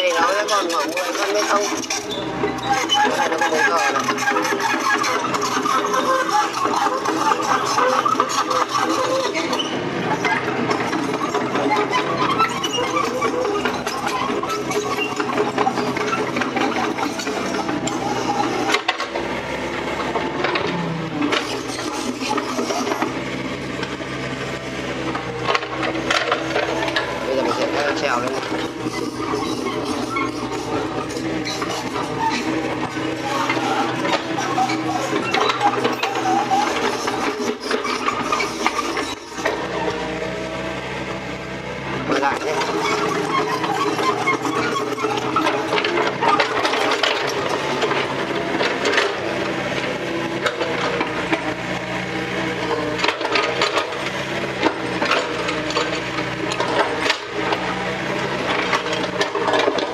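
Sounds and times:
excavator engine running: 0.0s - 59.9s
excavator raking soil and gravel: 0.0s - 59.9s.

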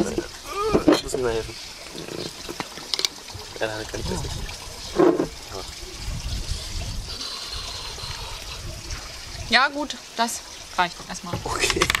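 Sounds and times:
wind rumbling on microphone: 3.3s - 9.8s.

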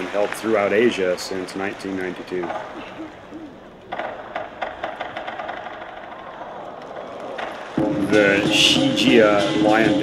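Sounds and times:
crowd noise: 0.0s - 10.0s
drum and cymbal strikes: 7.8s - 10.0s.

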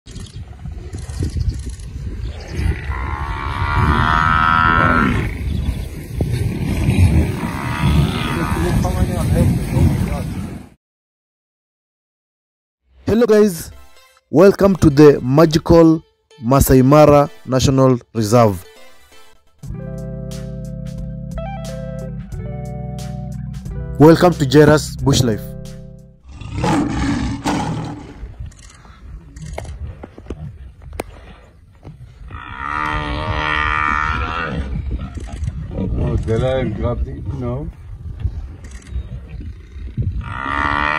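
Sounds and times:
high drawn-out animal call: 2.6s - 5.4s
lion roaring: 2.8s - 5.4s, 26.3s - 28.4s
lions growling: 26.3s - 28.4s.

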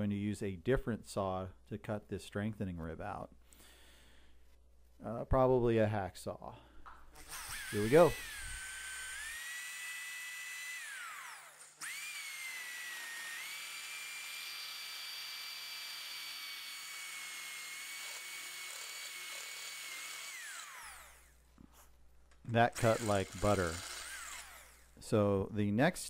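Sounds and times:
electric drill whining: 7.1s - 21.4s, 22.7s - 25.0s.

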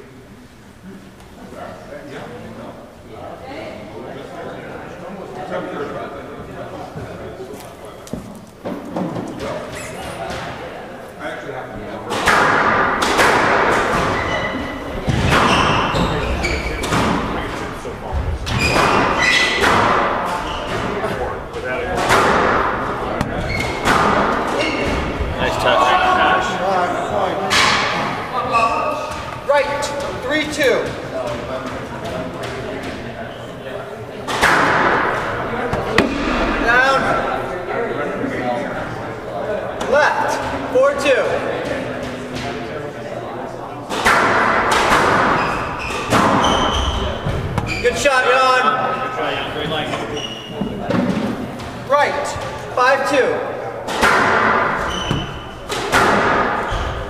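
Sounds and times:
people talking: 0.0s - 45.4s, 46.1s - 57.0s
squash ball thuds and smacks: 34.3s - 36.6s.

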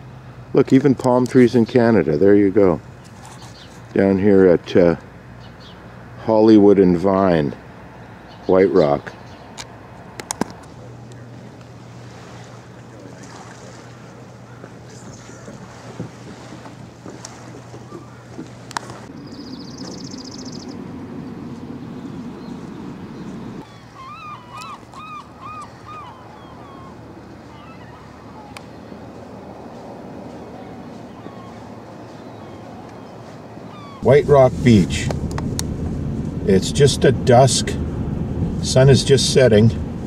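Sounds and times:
traffic rumble: 0.0s - 40.0s
wind: 0.0s - 40.0s
bird calls: 2.9s - 3.9s, 5.4s - 5.9s, 12.1s - 29.0s, 30.3s - 34.2s.

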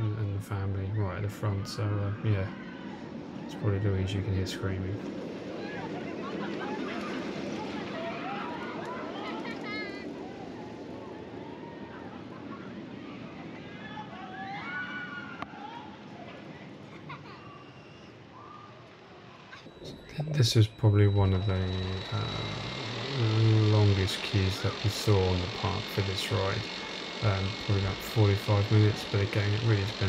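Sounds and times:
riders screaming: 0.9s - 3.6s, 5.3s - 18.8s, 21.2s - 30.0s
roller coaster rushing noise: 1.4s - 17.0s.

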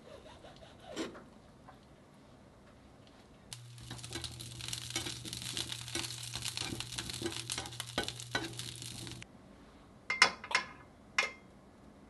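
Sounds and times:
tongs clicking against pan: 3.5s - 9.2s
vegetables sizzling in a frying pan: 3.5s - 9.2s
low steady hum: 3.5s - 9.5s.

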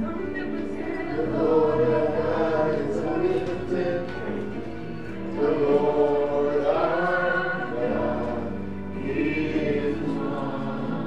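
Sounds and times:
choir singing: 0.0s - 11.0s.

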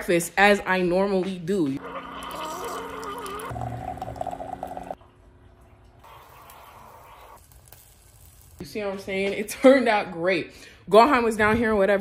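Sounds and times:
liquid pouring into container: 1.8s - 5.0s.

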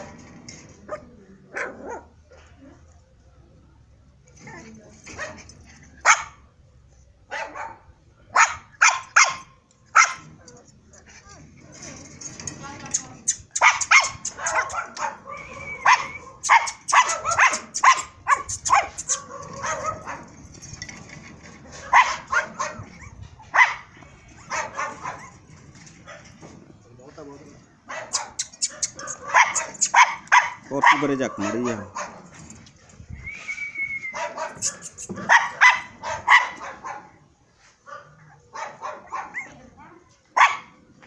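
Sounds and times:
puppies yipping and barking: 12.9s - 21.2s, 21.8s - 26.4s, 27.9s - 32.5s, 34.1s - 37.0s, 38.3s - 39.6s.

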